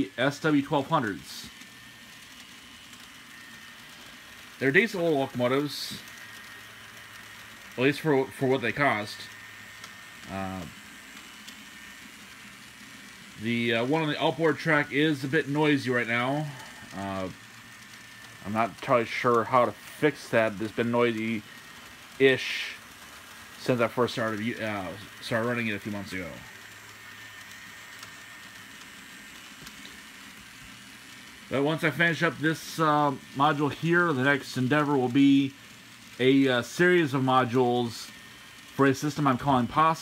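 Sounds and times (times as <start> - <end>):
model train motors whirring: 0.0 - 40.0
thin high whine: 0.0 - 40.0.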